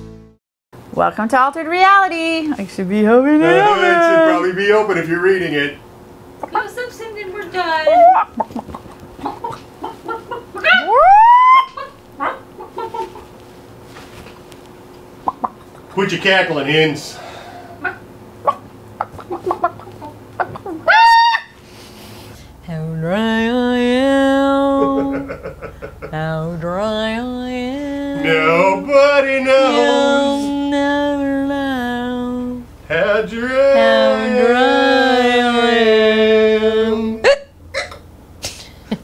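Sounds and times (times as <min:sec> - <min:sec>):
high-pitched squawk: 0:07.9 - 0:08.3, 0:10.6 - 0:12.4, 0:19.2 - 0:21.6
short upward yelp: 0:07.9 - 0:08.4, 0:10.6 - 0:12.4, 0:19.2 - 0:21.6
person imitating hen clucks: 0:07.9 - 0:13.2, 0:15.2 - 0:16.0, 0:17.7 - 0:21.5
breathy sound: 0:17.1 - 0:17.9
person singing long note: 0:27.9 - 0:32.6, 0:33.4 - 0:37.2.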